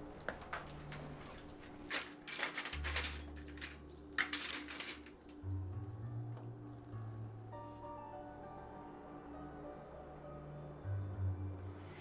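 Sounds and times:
metal utensils rattling in drawer: 1.8s - 5.4s.

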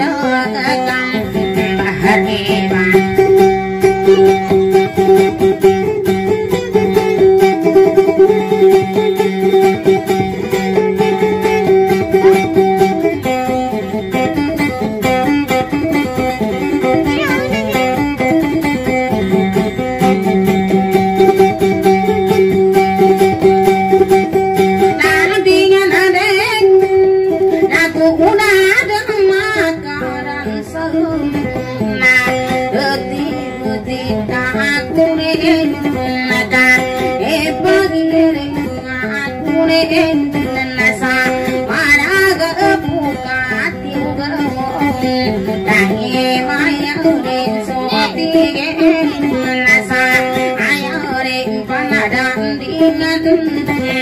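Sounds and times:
person singing: 0.0s - 54.0s
plucked electric guitar: 0.0s - 54.0s.

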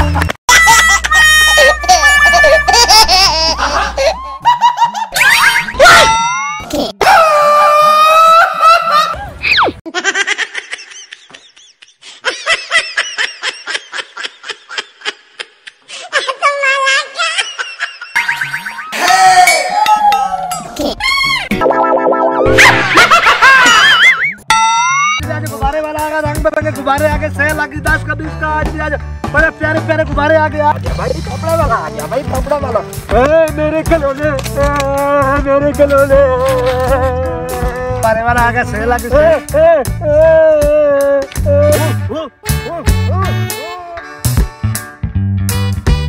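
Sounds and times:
background music: 0.0s - 5.1s, 18.2s - 46.0s
laughter: 0.5s - 5.2s, 8.4s - 9.3s, 9.9s - 18.5s, 22.6s - 24.3s
rising pitch glides: 21.5s - 25.1s
held musical chord: 21.6s - 23.1s.

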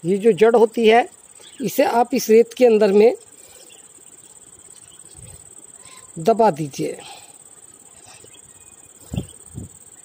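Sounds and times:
man speaking: 0.0s - 3.3s, 6.1s - 7.4s
crickets chirring: 0.0s - 10.0s.

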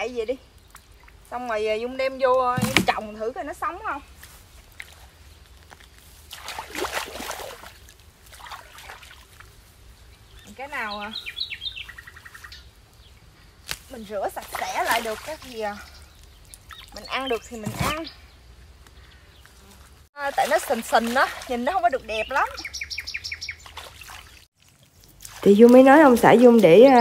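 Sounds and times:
songbird singing: 0.0s - 4.1s, 8.6s - 24.5s
small bird chirping: 10.1s - 13.2s, 15.6s - 19.6s, 21.9s - 24.5s.

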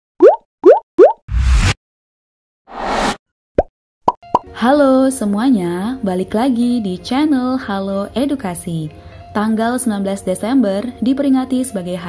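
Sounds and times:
whoosh: 1.3s - 1.8s.

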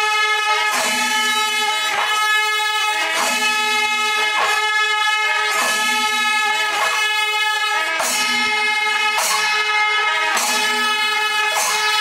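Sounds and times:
horns blaring: 0.0s - 12.0s
drums and cymbals striking: 0.4s - 12.0s.

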